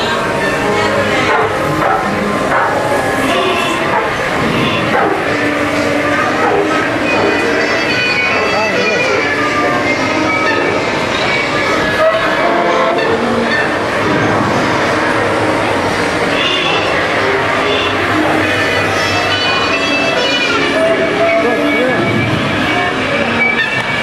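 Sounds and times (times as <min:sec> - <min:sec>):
music and voices from speakers: 0:00.0 - 0:24.0
ride vehicle rumbling on rail: 0:00.0 - 0:24.0.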